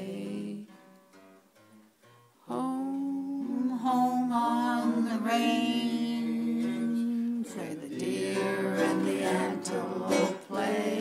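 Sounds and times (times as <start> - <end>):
person humming: 2.5 - 11.0.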